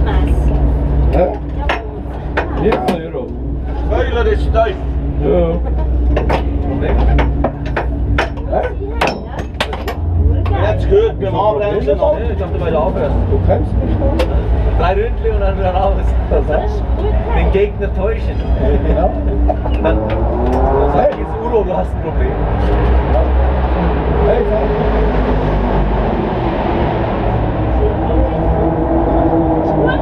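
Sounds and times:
people talking: 0.0s - 0.5s, 1.1s - 5.9s, 8.4s - 23.4s, 24.0s - 25.1s, 27.7s - 30.0s
car engine idling: 0.0s - 30.0s
low steady rumble: 0.0s - 30.0s
sharp knocks and clacks: 6.1s - 10.6s.

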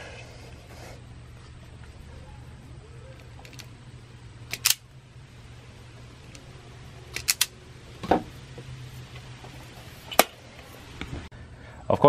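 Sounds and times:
steady low hum: 0.0s - 12.0s
wire stripper clicks: 4.5s - 4.8s, 7.1s - 7.5s.

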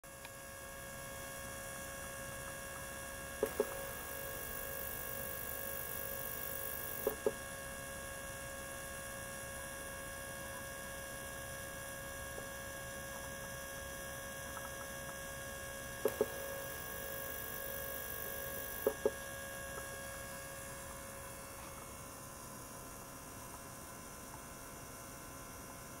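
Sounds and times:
ultrasonic cleaner humming: 0.1s - 26.0s.

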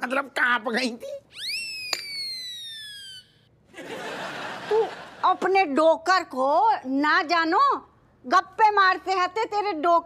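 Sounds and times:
swooping whistle-like tone: 1.4s - 3.4s.

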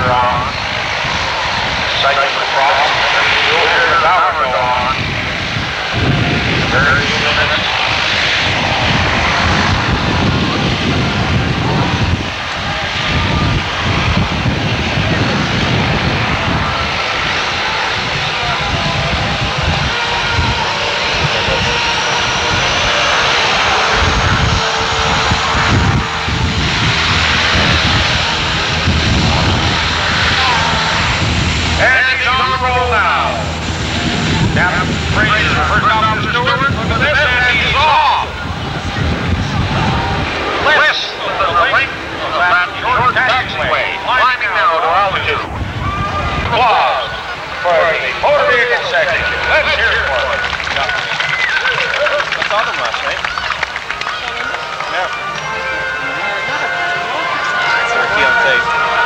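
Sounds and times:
helicopter lifting off: 0.0s - 59.0s
turboprop aircraft engines: 0.0s - 59.0s.

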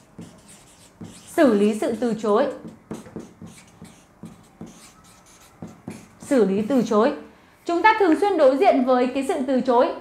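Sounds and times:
marker scratching on paper: 0.0s - 7.0s.

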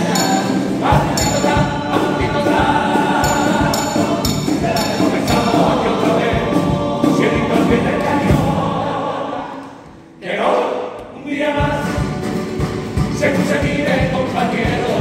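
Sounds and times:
guitar accompaniment: 0.0s - 10.2s, 11.0s - 15.0s
male choir singing in harmony: 0.0s - 15.0s
low drum beats: 0.8s - 8.9s, 11.0s - 15.0s.

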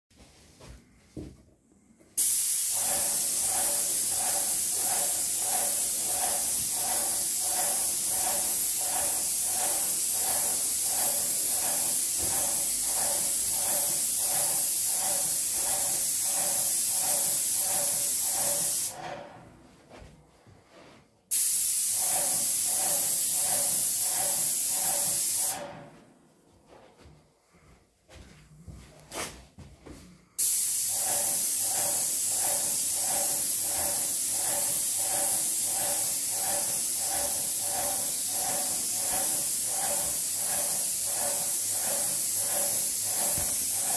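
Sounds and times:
paint sprayer hissing: 2.2s - 19.0s, 21.3s - 25.8s, 30.4s - 43.9s.

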